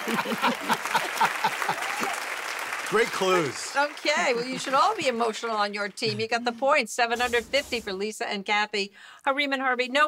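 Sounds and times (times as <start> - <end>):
applause: 0.0 - 6.0
voices: 3.8 - 8.0.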